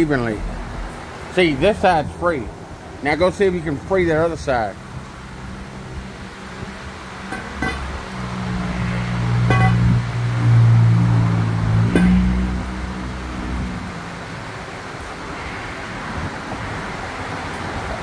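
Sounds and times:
low steady hum: 5.1 - 14.5
pry bar clanking on metal: 7.3 - 8.1, 11.8 - 12.6.

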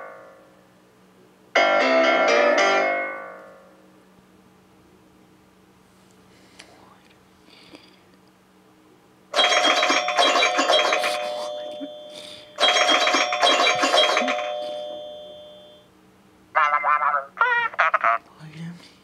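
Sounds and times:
loud ringing chime: 9.4 - 15.9.

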